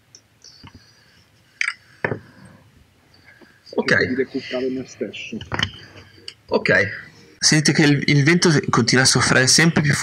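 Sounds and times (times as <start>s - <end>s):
faint small noises: 0.0s - 10.0s.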